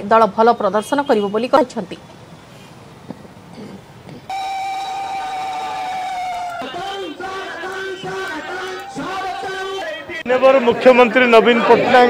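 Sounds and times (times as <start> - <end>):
horn high steady note: 4.3 - 8.0.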